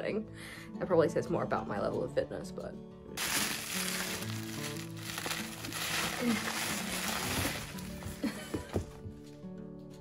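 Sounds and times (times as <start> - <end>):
background music: 0.0 - 10.0
bubble wrap crinkling: 3.2 - 8.4.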